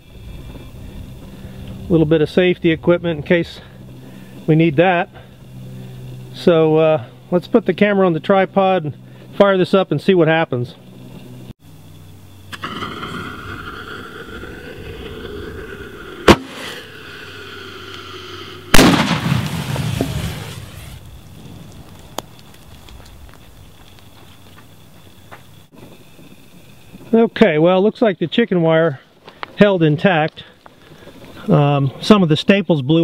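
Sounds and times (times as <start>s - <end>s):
firework blast: 12.5s - 17.6s, 18.7s - 21.8s
firework sharp crack: 16.0s - 17.2s, 18.7s - 21.8s.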